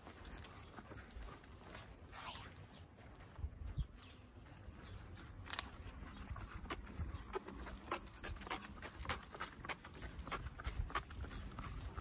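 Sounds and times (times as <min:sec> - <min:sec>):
footsteps on asphalt: 0:00.0 - 0:04.2, 0:04.8 - 0:12.0.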